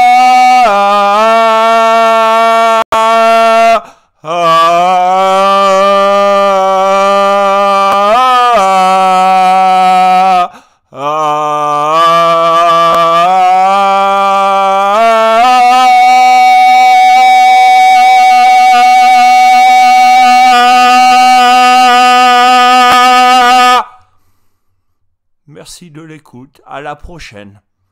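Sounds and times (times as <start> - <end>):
man chanting wordless notes: 25.5 - 27.6.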